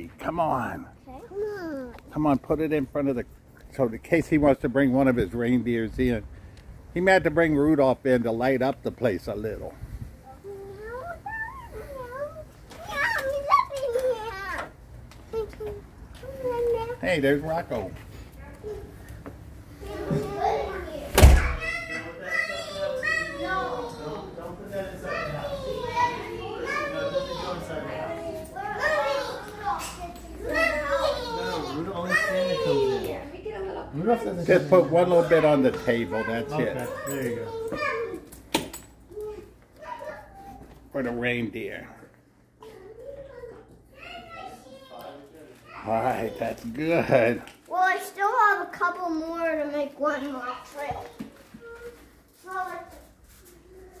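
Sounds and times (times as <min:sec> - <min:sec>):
young child vocalising: 0:01.1 - 0:02.0, 0:10.3 - 0:14.0.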